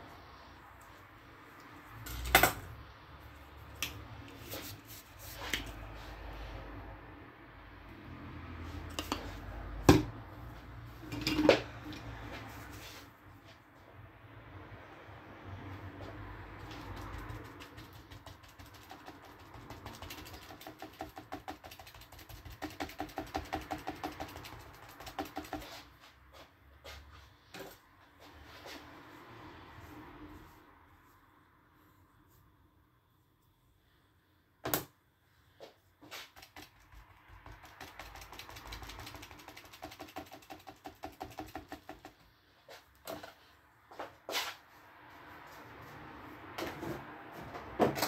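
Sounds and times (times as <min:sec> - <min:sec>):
brush tapping paint on paper: 0:16.5 - 0:26.0, 0:36.0 - 0:43.0.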